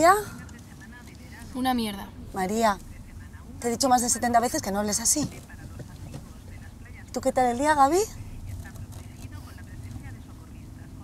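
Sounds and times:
car interior engine and road rumble: 0.0s - 11.0s.

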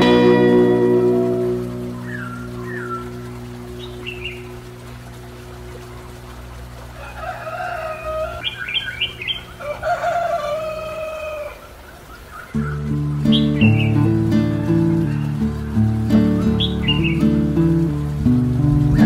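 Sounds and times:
songbird chirps and calls: 0.0s - 6.3s, 7.0s - 18.3s
background music held chord: 0.0s - 6.8s, 12.6s - 19.0s.

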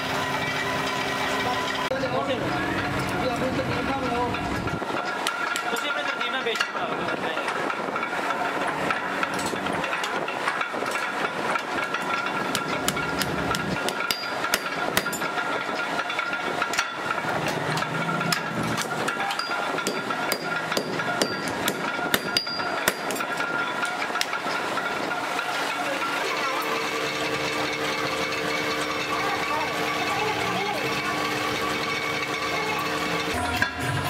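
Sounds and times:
hammer striking iron on anvil: 8.8s - 25.6s.

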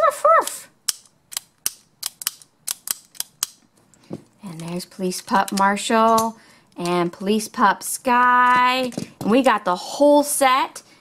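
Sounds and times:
plastic toy clicks and taps: 0.9s - 3.6s.

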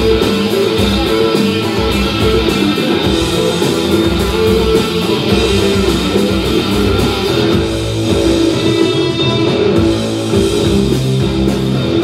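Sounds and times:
drums: 0.0s - 12.0s
electric guitar: 0.0s - 12.0s.

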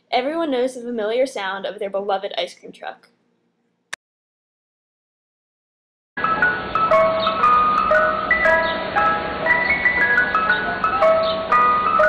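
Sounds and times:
ice cream truck chime jingle: 6.2s - 12.0s.

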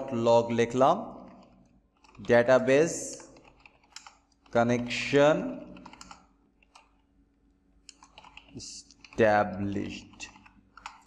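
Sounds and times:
person speaking: 0.0s - 1.5s, 2.1s - 3.5s, 4.5s - 6.1s, 8.4s - 10.5s.

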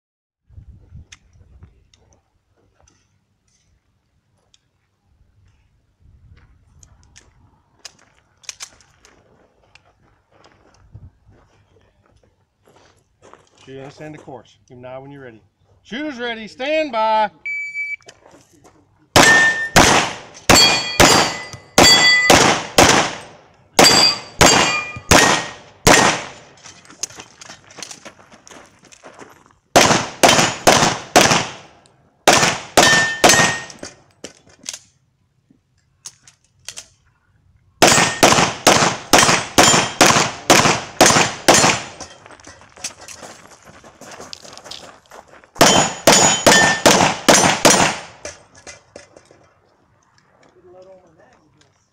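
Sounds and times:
steel plates ringing: 19.2s - 19.8s, 20.5s - 22.4s, 23.8s - 25.3s, 32.8s - 33.8s, 45.6s - 46.9s
pistol shots: 19.2s - 26.5s, 29.8s - 33.8s, 37.8s - 42.1s, 45.6s - 48.4s.

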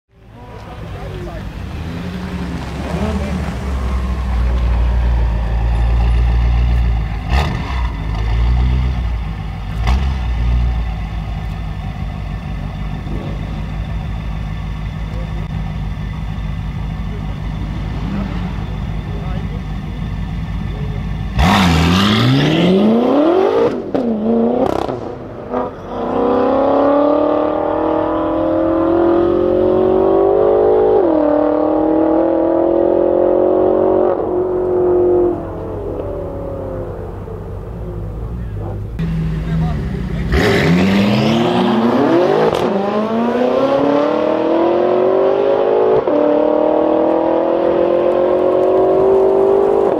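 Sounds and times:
car engine idling: 0.1s - 22.0s, 34.0s - 40.7s
car accelerating hard with gear shifts: 0.4s - 49.9s.

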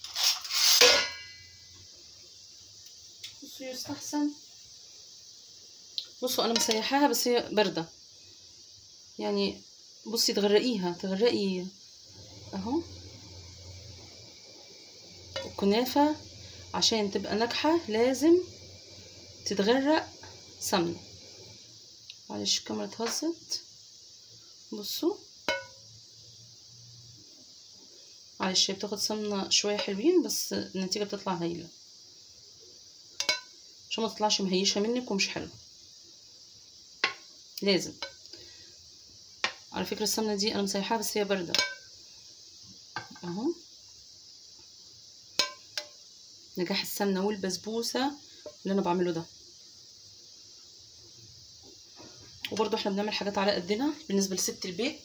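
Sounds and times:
metal kitchenware clatter: 0.4s - 1.4s
low hum: 12.1s - 21.8s
metal ladle clinking on cookware: 33.2s - 33.5s.

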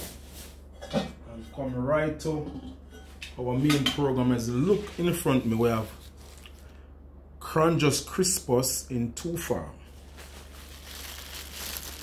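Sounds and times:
plastic bag rustling: 4.7s - 6.8s, 9.9s - 12.0s
dried seaweed crinkling: 5.4s - 6.7s, 10.0s - 12.0s.

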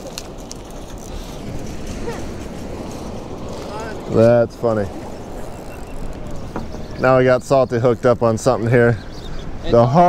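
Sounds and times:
ocean surf: 0.0s - 7.5s
wind on microphone: 0.0s - 7.5s.

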